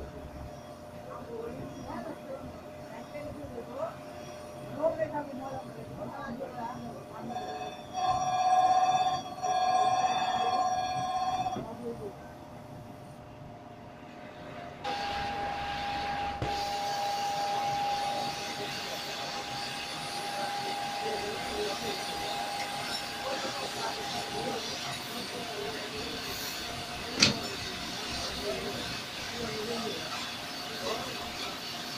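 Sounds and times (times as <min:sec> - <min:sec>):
grinding machine whine: 0:00.0 - 0:31.9.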